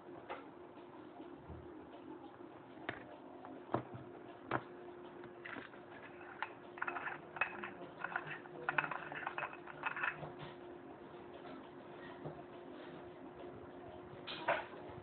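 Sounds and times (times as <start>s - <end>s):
small cooling fan humming: 0.0s - 15.0s.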